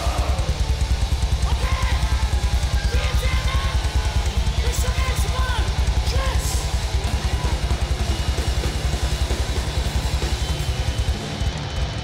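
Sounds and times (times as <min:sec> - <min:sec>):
heavy metal band playing: 0:00.0 - 0:12.0
rapid bass drum kicks: 0:00.0 - 0:12.0.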